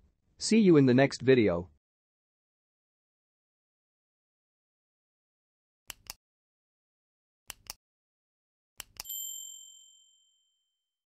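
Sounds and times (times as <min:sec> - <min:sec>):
mouse click: 0:05.9 - 0:06.2, 0:07.5 - 0:07.8, 0:08.8 - 0:09.1
bright high chime: 0:09.0 - 0:10.8.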